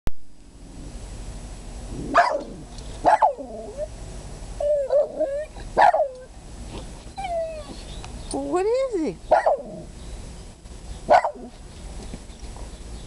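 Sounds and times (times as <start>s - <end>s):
dog whining: 2.0s - 3.9s, 4.6s - 6.3s, 7.1s - 8.0s
dog barking: 2.1s - 3.4s, 5.8s - 6.2s, 9.3s - 9.7s, 11.1s - 11.5s.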